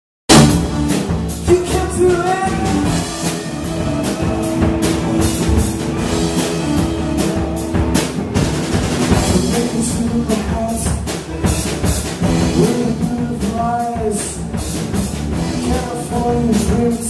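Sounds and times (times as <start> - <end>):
rock band playing live: 0.3 - 17.0.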